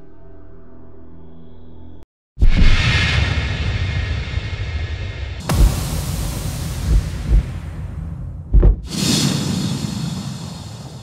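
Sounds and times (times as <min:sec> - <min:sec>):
low rumble: 0:02.5 - 0:11.0
cinematic hit with hissing shimmer: 0:05.4 - 0:08.2, 0:08.9 - 0:11.0.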